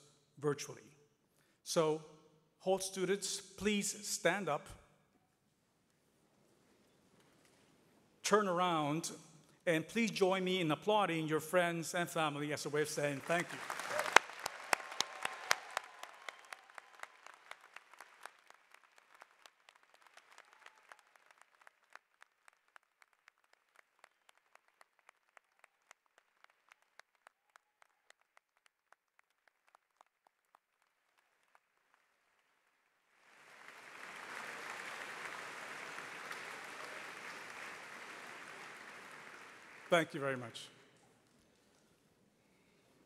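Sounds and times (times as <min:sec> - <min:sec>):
crowd applauding: 0:13.0 - 0:40.5.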